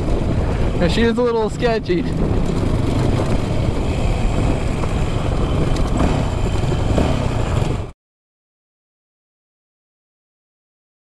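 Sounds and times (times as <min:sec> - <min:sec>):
wind on microphone: 0:00.0 - 0:07.9
dirt bike engine: 0:00.0 - 0:08.0
road noise: 0:00.0 - 0:08.0.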